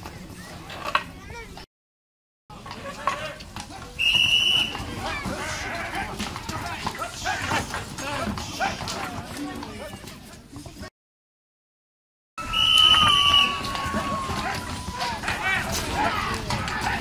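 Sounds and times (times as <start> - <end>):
voices of people: 0.0 - 1.7, 2.5 - 10.9, 12.4 - 17.0
hooves clopping on brick: 2.5 - 10.9, 12.6 - 17.0.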